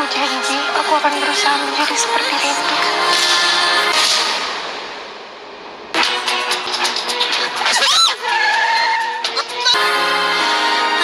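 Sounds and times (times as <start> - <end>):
music: 0.0 - 11.0
crash-like swish of noise: 3.9 - 6.1.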